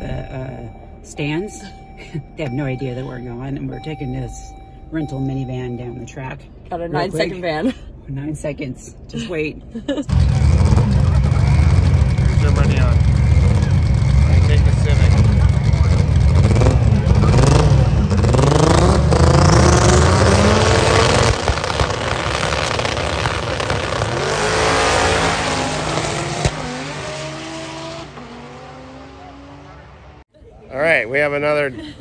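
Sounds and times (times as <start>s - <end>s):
race car engines revving: 10.1s - 30.3s.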